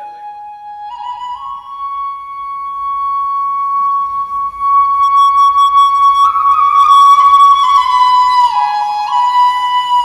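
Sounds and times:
flute holding a high note: 0.0 - 10.0.

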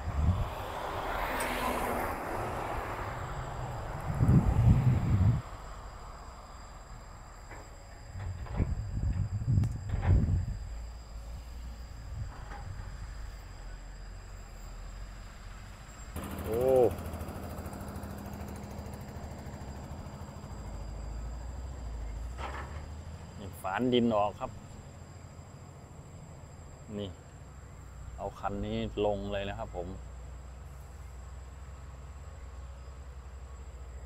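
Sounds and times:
diesel engine rumbling: 0.0 - 34.0.

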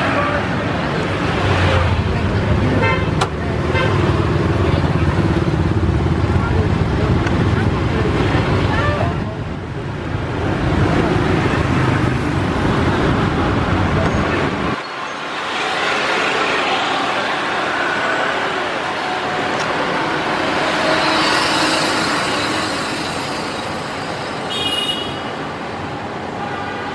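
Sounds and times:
street traffic din: 0.0 - 26.9.

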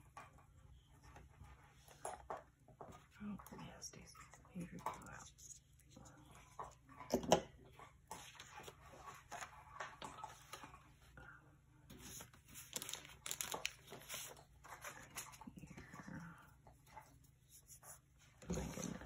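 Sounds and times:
paper handling sounds: 11.9 - 16.0.

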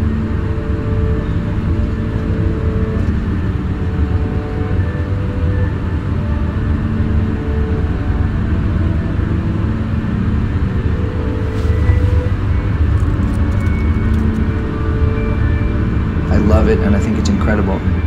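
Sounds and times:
car engine and road noise: 0.0 - 18.0.

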